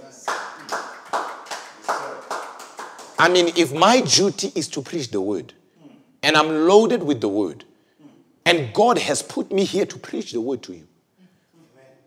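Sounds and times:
hands clapping in rhythm: 0.0s - 3.7s.

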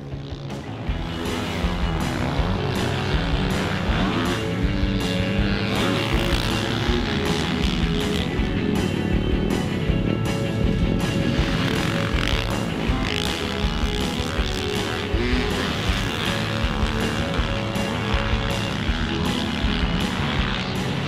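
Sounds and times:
background music with steady beat: 0.0s - 21.0s
motocross engine revving: 0.0s - 21.0s.

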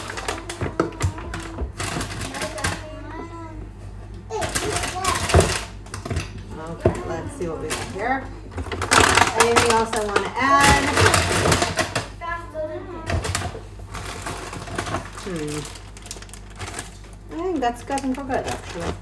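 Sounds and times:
kitchen items knocking and clattering: 0.0s - 3.1s, 4.3s - 12.2s, 13.0s - 19.0s
voices talking: 0.0s - 5.5s, 6.3s - 11.4s.

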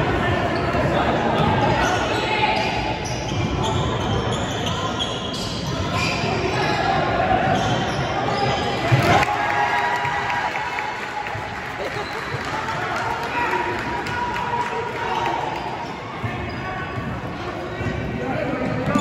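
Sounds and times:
spectators talking: 10.6s - 19.0s.

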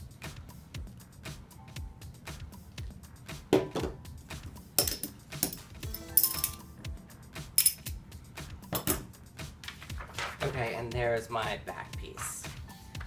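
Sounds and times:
background music: 0.0s - 13.0s
metal washers clinking: 4.8s - 6.6s, 7.6s - 8.0s.

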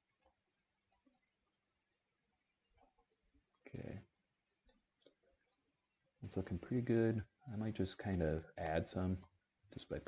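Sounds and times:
faint clicks: 2.7s - 3.1s.

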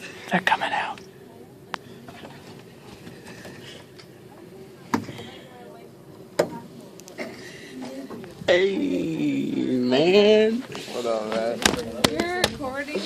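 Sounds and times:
muffled voices: 0.0s - 13.0s.

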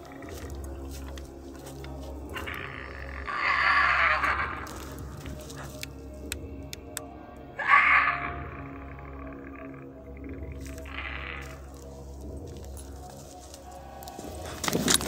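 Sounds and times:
background music: 0.0s - 15.0s
animal giving harsh cries: 2.3s - 5.7s, 7.6s - 10.0s, 10.6s - 11.8s.

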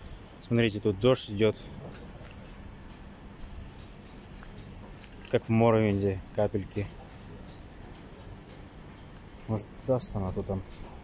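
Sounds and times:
light rain on asphalt: 0.0s - 11.0s.

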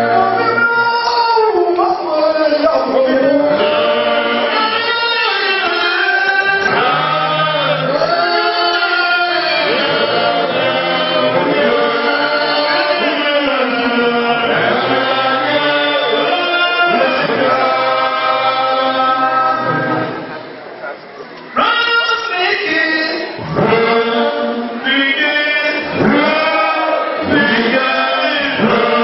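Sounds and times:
men singing a chant: 0.0s - 19.9s, 22.6s - 29.0s.

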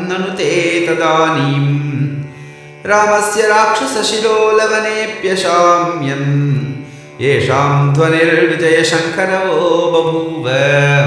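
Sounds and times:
man chanting: 0.0s - 2.2s, 2.8s - 11.0s.

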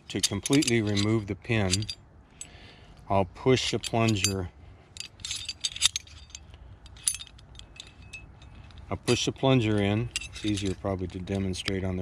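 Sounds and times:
small metallic clicks and clinks: 0.0s - 12.0s.

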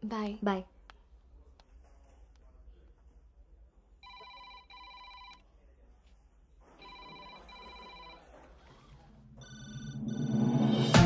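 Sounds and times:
telephone ringing: 4.0s - 5.4s, 6.8s - 10.9s.

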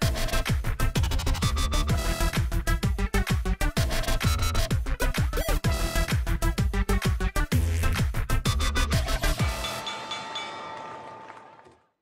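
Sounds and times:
electronic music with deep drum hits: 0.0s - 9.9s
held chime-like tones: 9.4s - 11.2s.

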